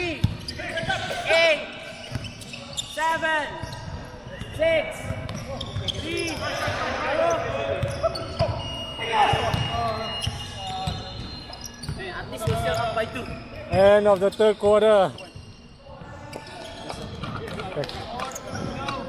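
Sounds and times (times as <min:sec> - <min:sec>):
shoe squeaks on hardwood: 0:01.8 - 0:04.5, 0:05.1 - 0:19.0
basketball bouncing: 0:11.8 - 0:12.8.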